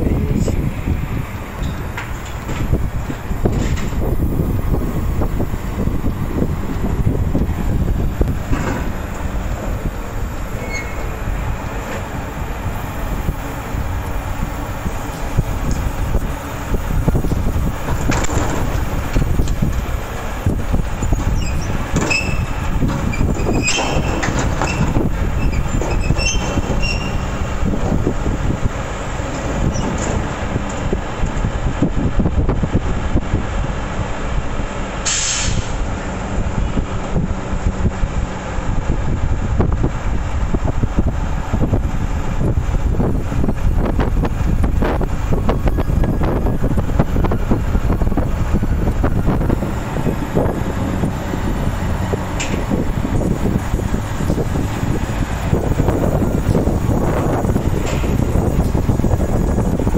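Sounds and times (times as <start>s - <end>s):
garbage truck engine and hydraulics: 0.0s - 59.9s
metallic squeals and clatter: 10.2s - 12.2s, 20.9s - 27.8s, 29.3s - 30.4s
short burst of noise: 35.0s - 35.8s.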